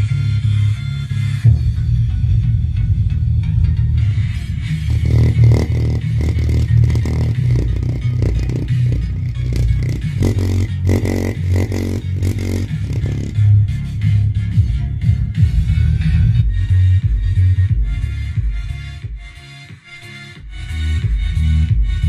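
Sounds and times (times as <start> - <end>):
bass-heavy music through subwoofer: 0.0 - 22.0.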